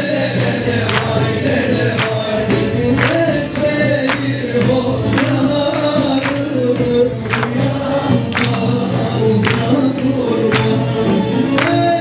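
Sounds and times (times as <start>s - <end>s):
choir singing folk song: 0.0s - 12.0s.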